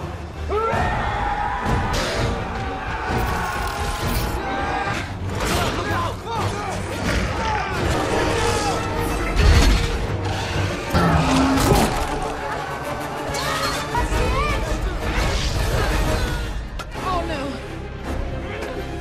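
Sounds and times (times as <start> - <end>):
action film music score: 0.0 - 19.0.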